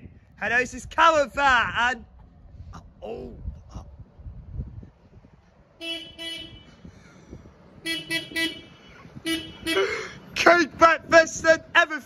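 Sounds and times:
vehicle horn toots: 5.8 - 6.8, 7.8 - 10.0.

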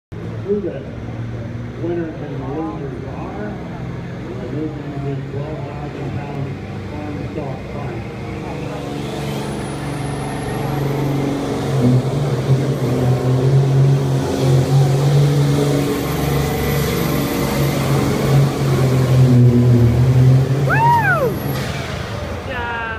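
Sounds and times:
diesel tractor engine at full throttle: 0.1 - 22.8.

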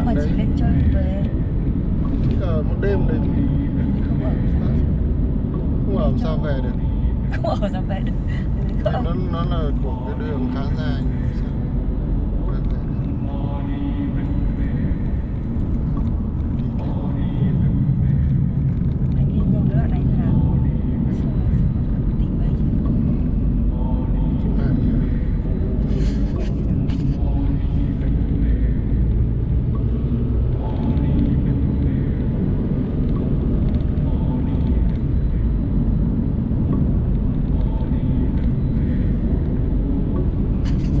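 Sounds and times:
car cabin road and engine rumble: 0.0 - 41.0.

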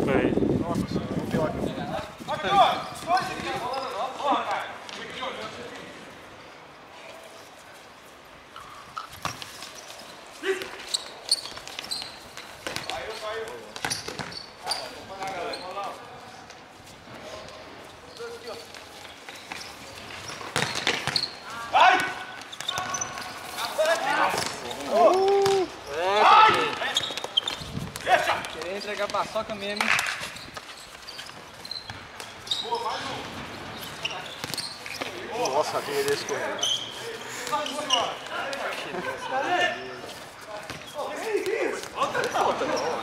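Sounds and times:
ball kicked and bouncing: 9.0 - 9.6, 11.7 - 14.4, 20.4 - 21.3, 34.4 - 35.2
players shouting: 23.7 - 27.0.

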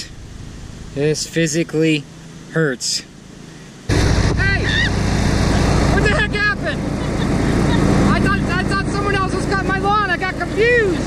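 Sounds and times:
lawn mower engine running: 3.9 - 11.0.

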